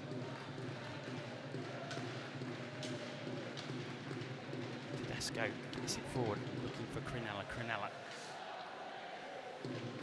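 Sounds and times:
stick and puck taps on ice: 0.1s - 7.0s.

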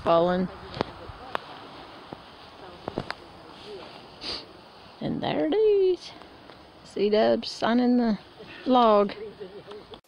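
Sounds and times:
branches and needles rustling: 0.0s - 10.0s.

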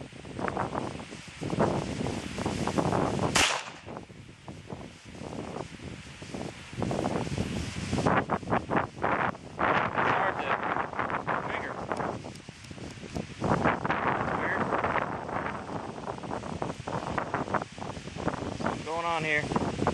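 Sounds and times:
wind buffeting microphone: 0.0s - 19.9s
pistol shot: 3.3s - 4.0s.

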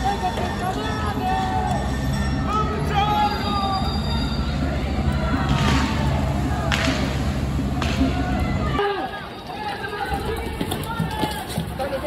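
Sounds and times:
high squealing tones: 0.0s - 6.4s
water cannon truck rumble: 0.0s - 8.8s.

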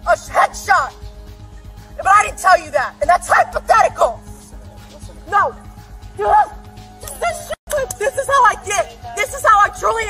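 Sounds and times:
woman shouting: 0.0s - 1.0s, 2.0s - 4.3s, 5.2s - 10.0s
background music with held tones: 0.0s - 10.0s.

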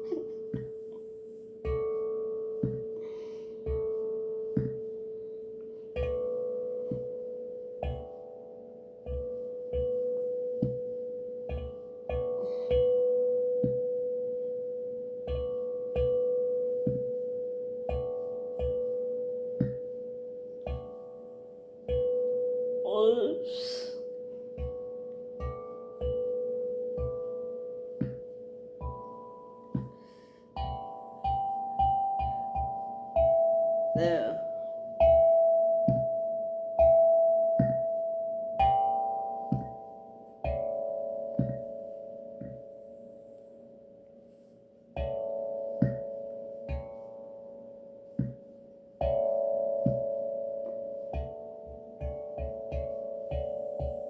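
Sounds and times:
steel tongue drum notes ringing: 0.0s - 54.0s.

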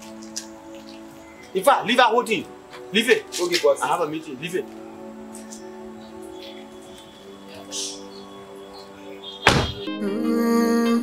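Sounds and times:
background music: 0.0s - 11.0s
car door slamming: 9.4s - 9.9s.

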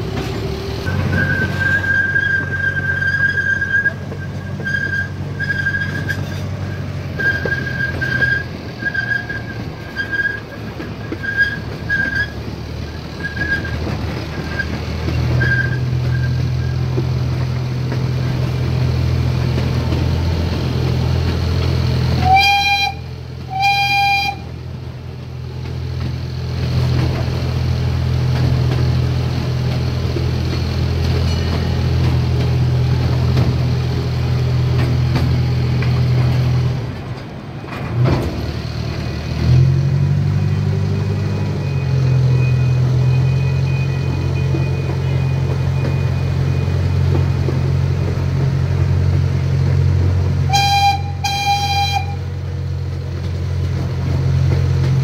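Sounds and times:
locomotive engine running: 0.0s - 55.0s
short horn toots: 50.5s - 52.2s.

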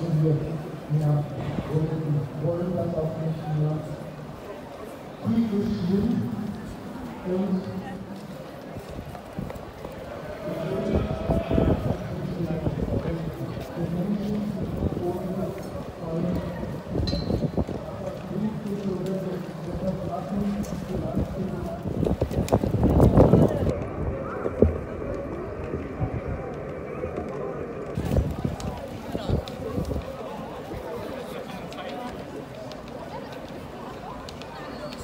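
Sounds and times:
passers-by talking: 0.0s - 35.0s
voices: 0.0s - 35.0s.

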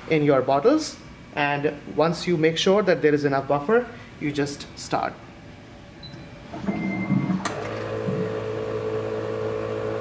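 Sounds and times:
pumps humming: 6.0s - 10.0s.

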